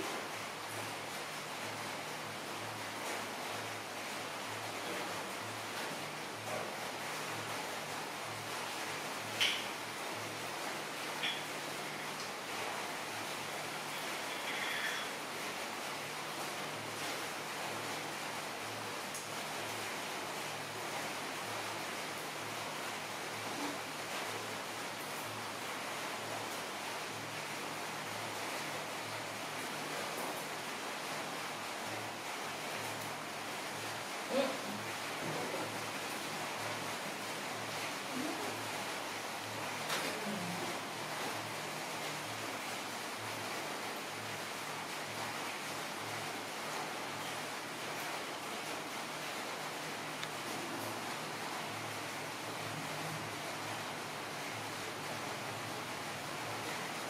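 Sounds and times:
steady background hiss: 0.0 - 57.0.

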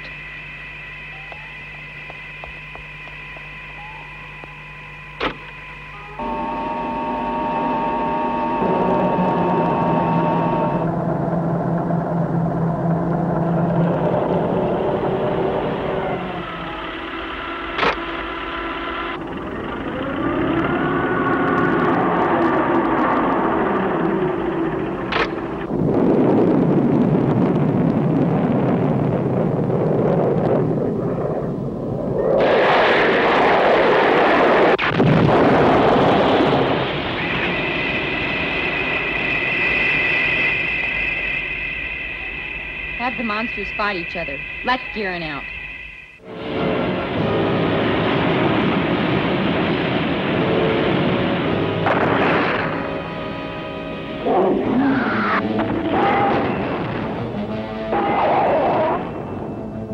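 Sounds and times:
electronic sci-fi tones and drones: 0.0 - 59.9
gliding tone: 36.4 - 51.8.

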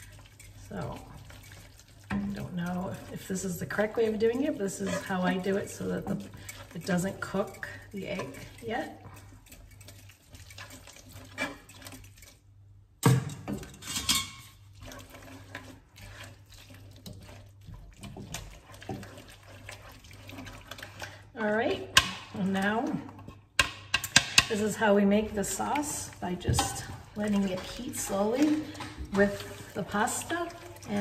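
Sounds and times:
utensils scraping a frying pan: 0.0 - 12.4, 13.6 - 22.8, 23.9 - 31.0
liquid pouring from a jug: 14.6 - 21.3, 25.7 - 31.0.

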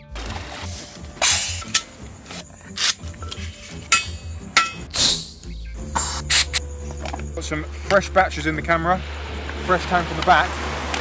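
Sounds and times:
background music: 0.0 - 11.0
short bursts of hiss: 0.7 - 7.3.

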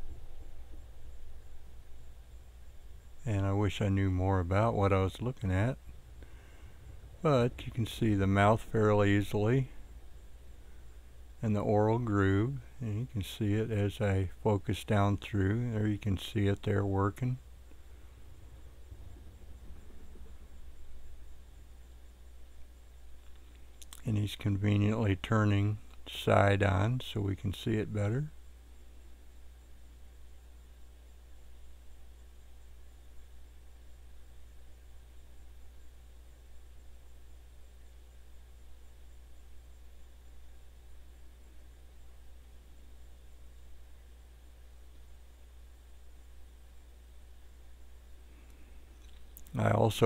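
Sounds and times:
faint hiss: 0.0 - 50.0
low steady hum: 0.0 - 50.0.

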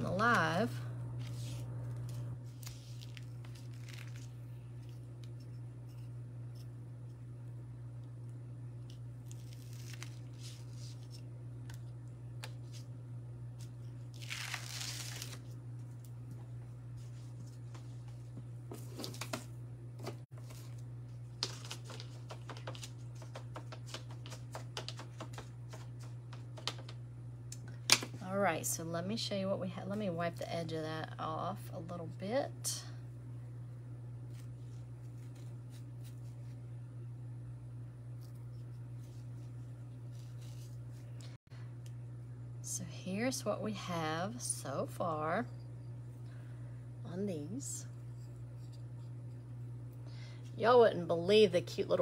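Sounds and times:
steady low hum: 0.0 - 52.0
plastic stencil ripping: 9.3 - 10.8, 14.1 - 15.5.

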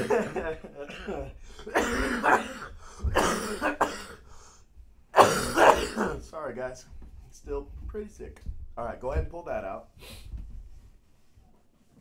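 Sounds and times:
person coughing: 0.0 - 4.3, 5.2 - 6.3.

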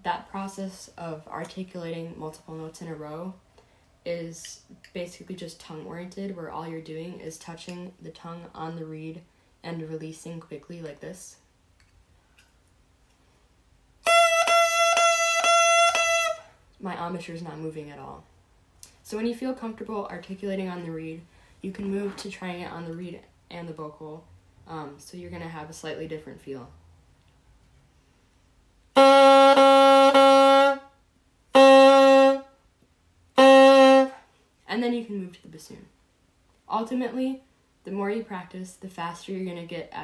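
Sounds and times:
bassoon reed tongued notes: 14.0 - 16.5, 29.0 - 30.8, 31.5 - 32.5, 33.4 - 34.2.

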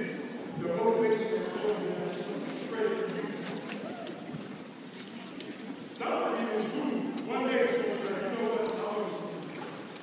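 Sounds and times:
man talking: 0.0 - 3.5, 6.0 - 9.5.

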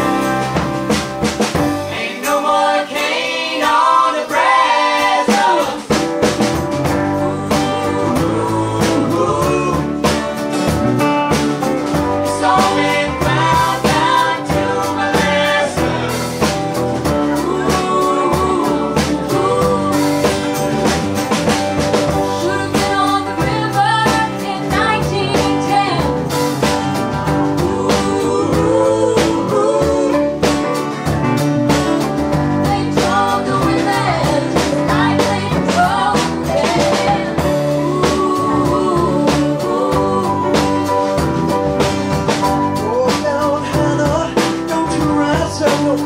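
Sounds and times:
drums: 0.0 - 46.0
live band playing: 0.0 - 46.0
piano: 0.0 - 46.0
woman singing: 7.0 - 10.1, 17.2 - 20.6, 22.1 - 26.2, 27.6 - 30.6, 32.5 - 41.1.

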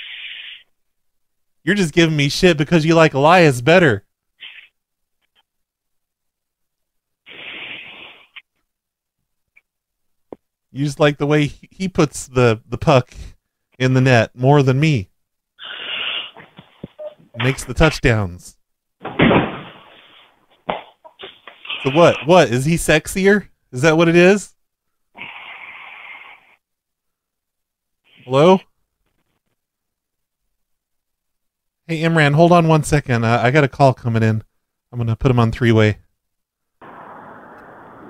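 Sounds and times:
low hiss on telephone line: 0.0 - 0.8, 4.3 - 5.5, 7.2 - 8.6, 15.5 - 18.2, 19.6 - 23.4, 25.1 - 26.7, 28.0 - 29.7, 36.8 - 38.0
person speaking: 16.8 - 18.6, 21.2 - 24.6.

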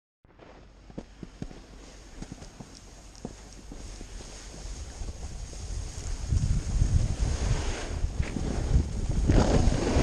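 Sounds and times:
snow crunching clicks: 0.4 - 10.0
snowboard sliding over snow: 0.4 - 10.0
wind rumble on microphone: 0.6 - 10.0.

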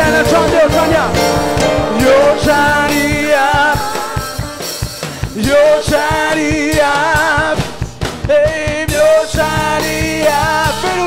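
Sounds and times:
choir singing: 0.0 - 7.6
band drum beat: 0.0 - 11.0
lead singer singing: 0.0 - 11.0.

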